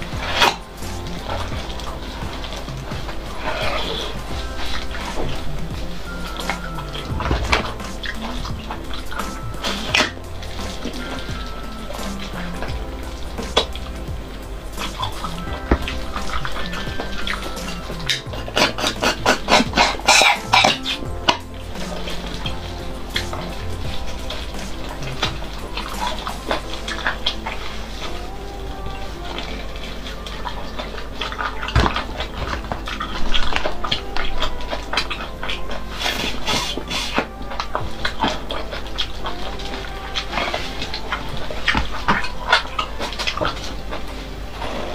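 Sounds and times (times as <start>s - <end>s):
background music: 0.0s - 44.9s.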